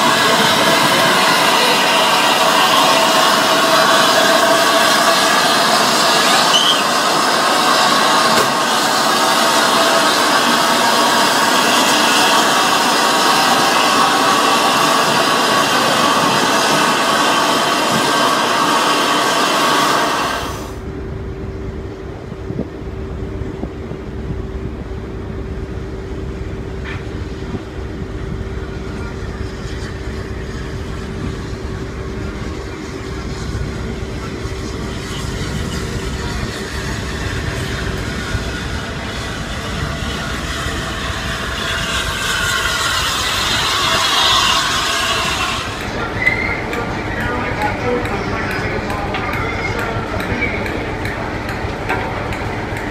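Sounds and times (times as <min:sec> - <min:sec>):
steam hissing: 0:00.0 - 0:20.8, 0:28.3 - 0:52.9
locomotive rumbling: 0:00.0 - 0:52.9
steady hum: 0:00.0 - 0:52.9.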